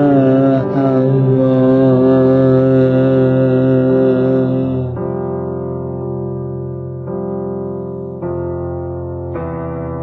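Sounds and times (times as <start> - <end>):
person singing long wavering notes: 0.0 - 5.5
sustained musical accompaniment: 0.0 - 10.0.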